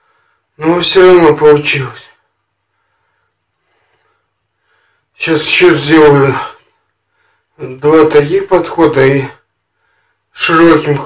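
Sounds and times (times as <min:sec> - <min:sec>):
faint breath from man: 0:00.0 - 0:00.6, 0:02.6 - 0:05.2, 0:06.7 - 0:07.6, 0:09.6 - 0:10.3.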